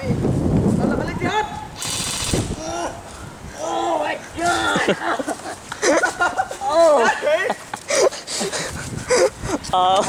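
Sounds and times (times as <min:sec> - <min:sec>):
airsoft rifle automatic fire: 0:01.8 - 0:02.5.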